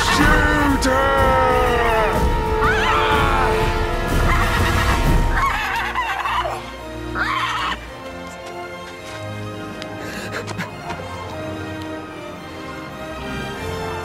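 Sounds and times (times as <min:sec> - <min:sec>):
people yelling and screeching: 0:00.0 - 0:07.8
music with sustained notes: 0:00.0 - 0:14.0.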